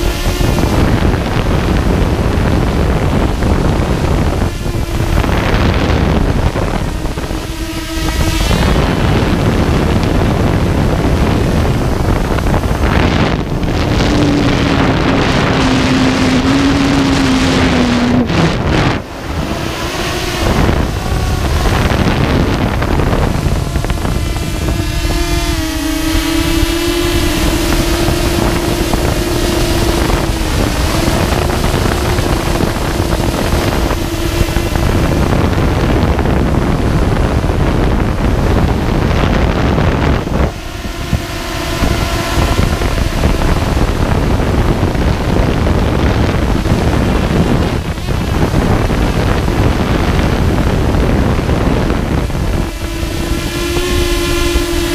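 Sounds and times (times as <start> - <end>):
drone motors and propellers humming: 0.0 - 54.9
wind noise on microphone: 0.0 - 54.9.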